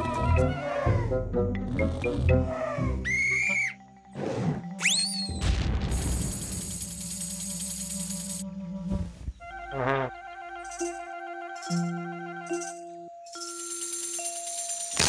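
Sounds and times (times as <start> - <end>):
cartoon soundtrack music: 0.0 - 5.8, 8.4 - 13.4
whistle-like upward glides: 3.0 - 3.8, 4.8 - 5.4.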